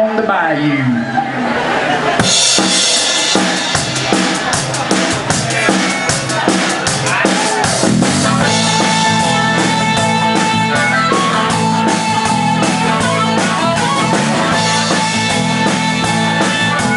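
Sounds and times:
live band playing: 0:01.4 - 0:16.9
harmonica long held note: 0:08.4 - 0:16.9.

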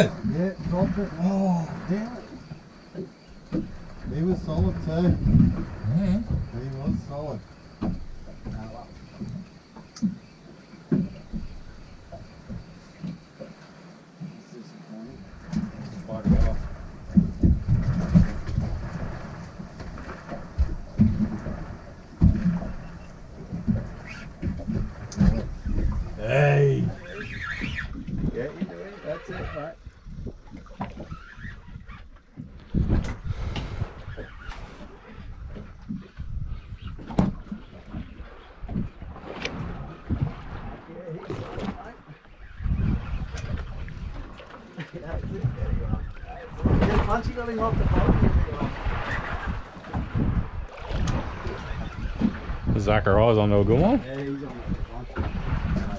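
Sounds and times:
water: 0:00.0 - 0:55.9
wind: 0:00.0 - 0:55.9
knocks and thumps: 0:03.0 - 0:10.2, 0:10.9 - 0:13.2, 0:15.4 - 0:26.2.

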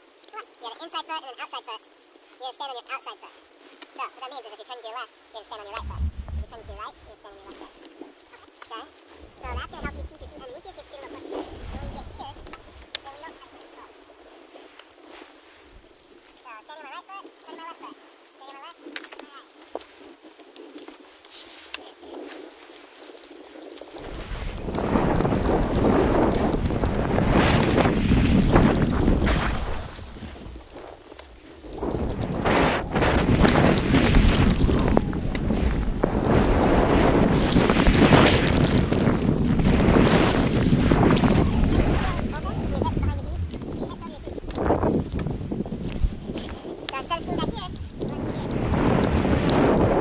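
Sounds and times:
skis hissing over snow: 0:00.0 - 0:50.0
wind buffeting microphone: 0:05.5 - 0:08.1, 0:09.1 - 0:13.8, 0:21.0 - 0:50.0.

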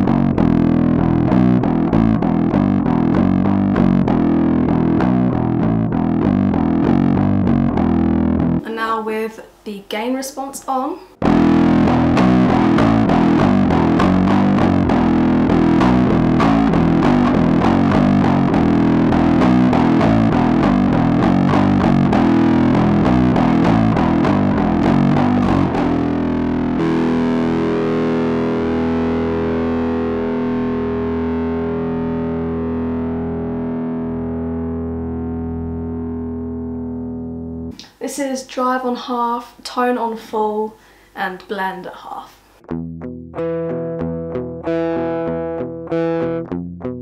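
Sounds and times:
distorted bass guitar riff: 0:00.0 - 0:08.6, 0:11.2 - 0:37.8, 0:42.6 - 0:47.0.

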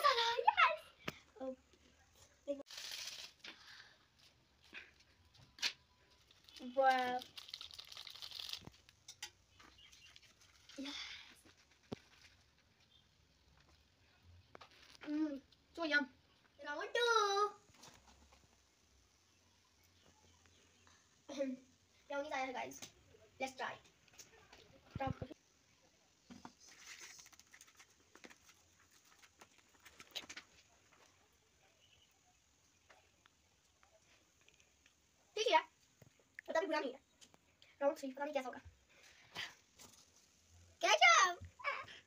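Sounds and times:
foil sachet crinkling: 0:02.7 - 0:04.3, 0:05.6 - 0:09.1, 0:26.6 - 0:30.2.

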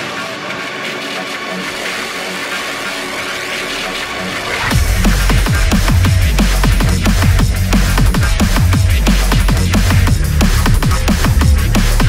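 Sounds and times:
synthesized electronic music wash: 0:00.0 - 0:12.0.

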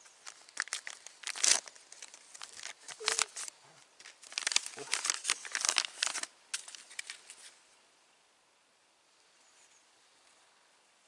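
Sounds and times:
bandage wrapping crinkling: 0:00.0 - 0:07.6.

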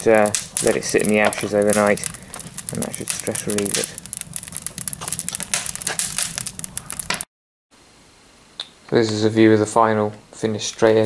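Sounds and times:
wood fire crackling: 0:00.0 - 0:07.3.

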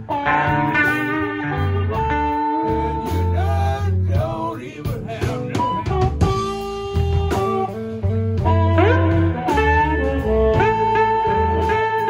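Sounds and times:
blues band playing: 0:00.0 - 0:12.0
harmonica bending notes: 0:00.0 - 0:12.0.

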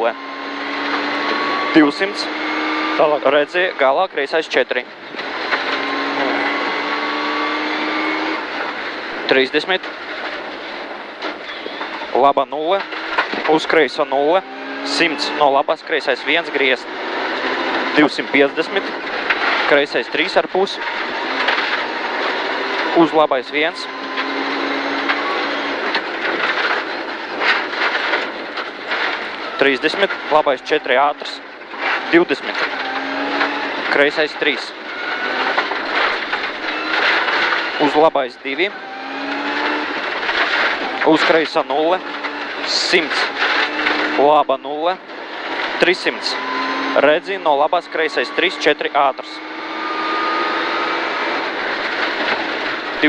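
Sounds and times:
rally car engine accelerating: 0:00.0 - 0:53.0
tyres on gravel: 0:08.5 - 0:53.0.

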